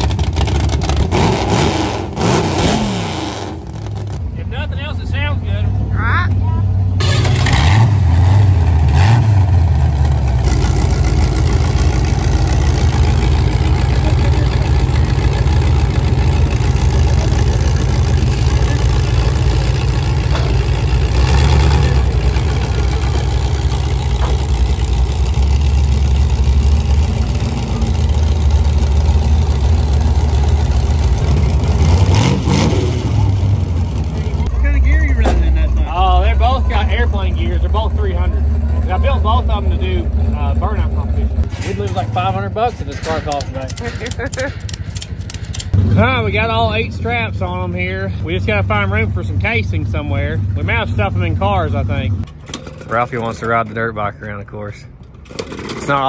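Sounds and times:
engine revving and idling: 0:00.0 - 0:52.3.

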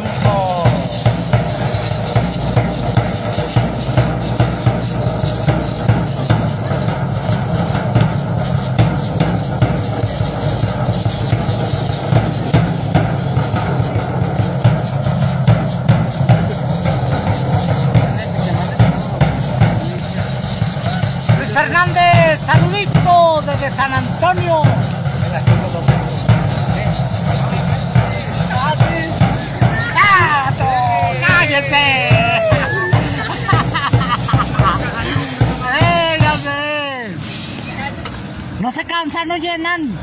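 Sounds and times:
drum playing fast beat: 0:00.0 - 0:39.6.

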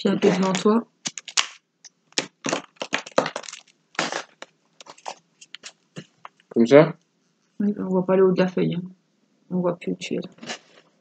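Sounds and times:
paper rustling and crinkling: 0:00.2 - 0:01.6, 0:02.2 - 0:06.4.

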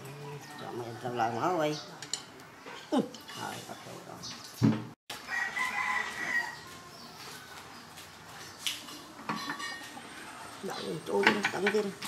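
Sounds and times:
rooster crowing: 0:05.2 - 0:06.8.

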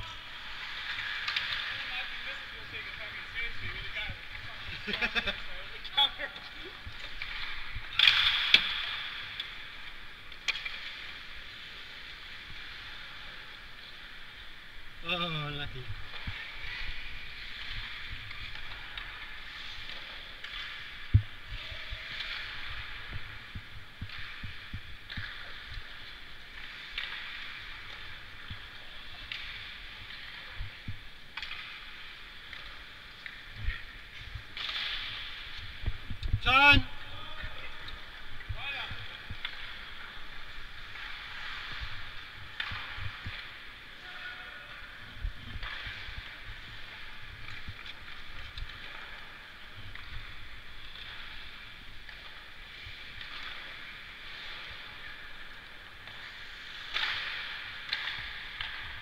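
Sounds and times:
hockey sticks and puck clacking: 0:00.0 - 0:14.6, 0:15.2 - 0:59.0
skates scraping on ice: 0:15.8 - 0:36.1, 0:36.8 - 0:59.0.

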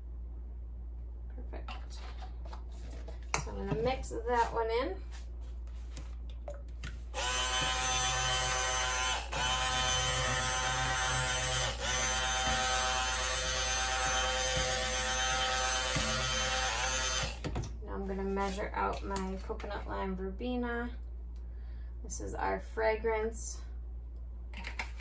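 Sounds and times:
stick blender motor whine: 0:07.2 - 0:17.6.

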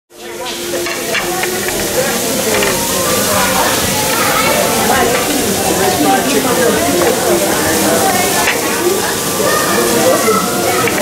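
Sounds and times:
faint voices: 0:00.1 - 0:11.0
serving utensils clinking: 0:00.2 - 0:11.0
steady hiss: 0:00.2 - 0:11.0.

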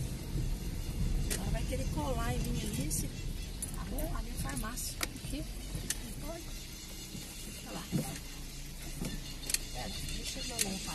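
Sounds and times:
car rumbling over cobblestones: 0:00.0 - 0:10.9.

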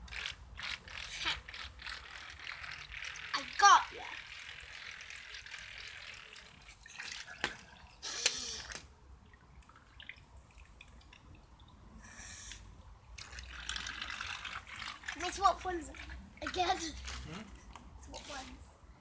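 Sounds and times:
water trickling and splashing: 0:00.0 - 0:12.0, 0:12.6 - 0:18.6
short rushes of hiss: 0:12.0 - 0:12.7.

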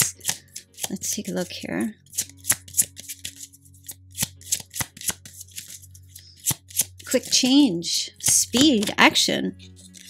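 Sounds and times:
cards snapping and flicking: 0:00.0 - 0:01.0, 0:02.1 - 0:07.4, 0:08.2 - 0:09.0, 0:09.6 - 0:10.0.

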